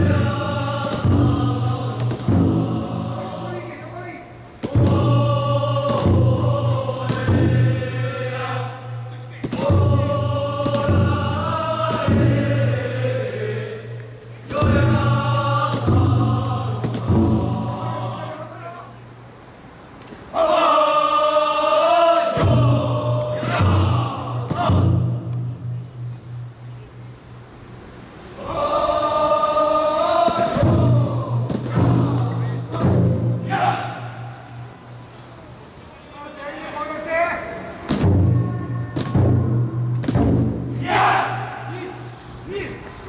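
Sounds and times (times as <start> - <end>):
crickets chirping: 0.0 - 43.0
high-pitched insect song: 0.0 - 43.0
voices chanting: 0.0 - 43.0.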